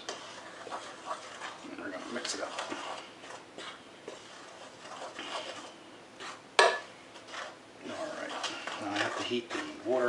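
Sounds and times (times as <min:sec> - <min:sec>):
wooden spoon scraping bowl: 0:00.0 - 0:10.0.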